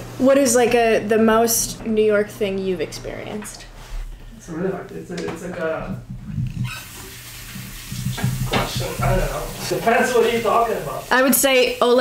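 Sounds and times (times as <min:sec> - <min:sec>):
water running: 0:00.0 - 0:12.0.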